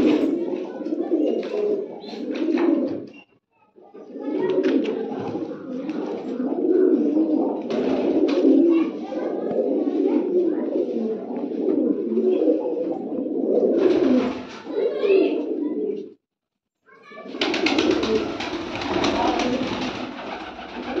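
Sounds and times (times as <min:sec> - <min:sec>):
pigeons cooing: 0:00.0 - 0:03.1, 0:03.8 - 0:16.1, 0:17.4 - 0:21.0
crackly noise: 0:17.4 - 0:21.0.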